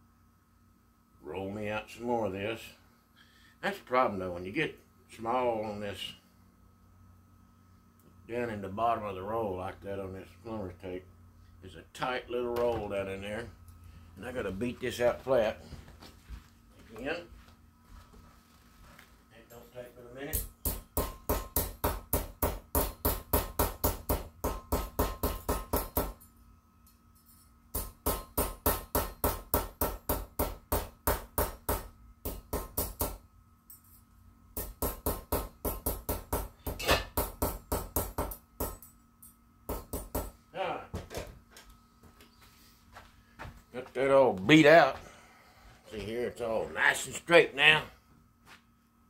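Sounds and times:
hammer on metal tape: 0:20.3 - 0:26.3, 0:27.7 - 0:33.8, 0:34.6 - 0:40.4.

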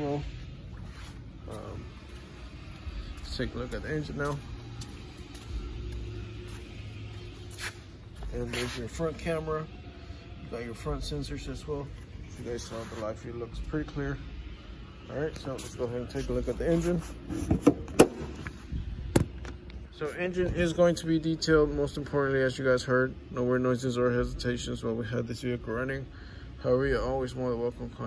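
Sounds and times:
low background hum: 0:00.0 - 0:28.0.

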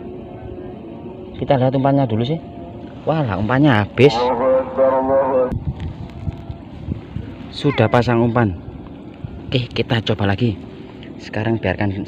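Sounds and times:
wind rumble on microphone: 0:02.7 - 0:12.0
man's drawn out voice: 0:04.0 - 0:05.6, 0:07.6 - 0:08.2.

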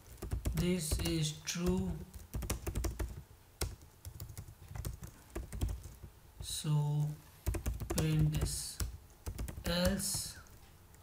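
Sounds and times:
computer keyboard typing: 0:00.0 - 0:06.5, 0:07.4 - 0:11.0.

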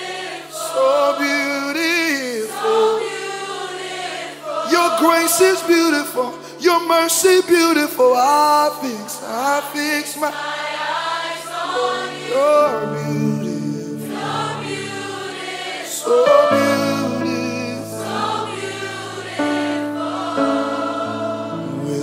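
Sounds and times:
choir singing gospel: 0:00.0 - 0:22.0.

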